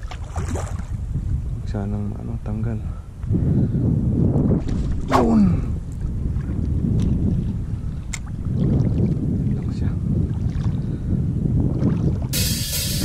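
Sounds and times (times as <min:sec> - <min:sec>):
wind rumbling on microphone: 0:00.0 - 0:13.0
music: 0:12.4 - 0:13.0.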